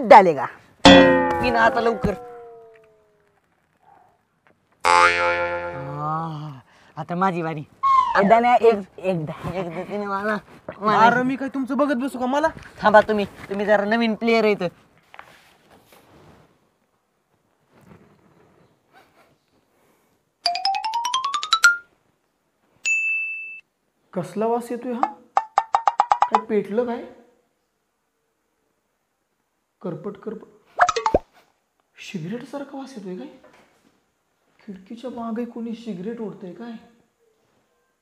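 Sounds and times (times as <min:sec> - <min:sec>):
twangy comedy sound effect: 0:00.9 - 0:02.4, 0:04.8 - 0:06.0
faint rustling: 0:12.1 - 0:20.0.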